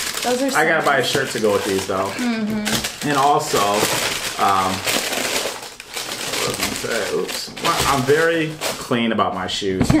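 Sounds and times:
tissue paper crinkling in a box: 0:00.0 - 0:09.2.

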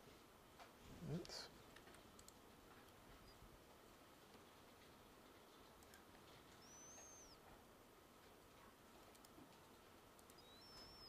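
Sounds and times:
computer mouse clicks: 0:01.8 - 0:03.0, 0:05.8 - 0:07.3, 0:09.0 - 0:09.4, 0:10.2 - 0:11.0
high-pitched chirp: 0:06.6 - 0:07.4, 0:10.3 - 0:11.0.

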